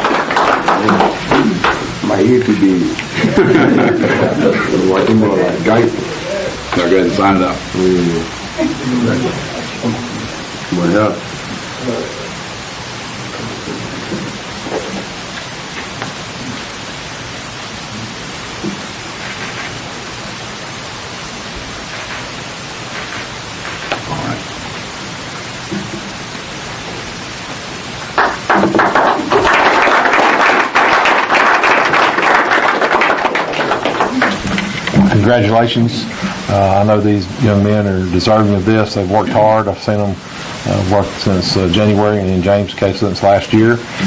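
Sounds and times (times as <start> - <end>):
audience clapping: 0.0 - 10.8, 28.0 - 35.5
room hiss: 0.0 - 44.0.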